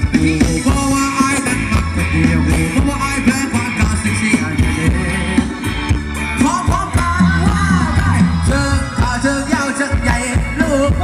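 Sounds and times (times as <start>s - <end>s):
band melody line: 0.0s - 11.0s
person singing: 0.0s - 11.0s
steady drum beat: 0.0s - 11.0s.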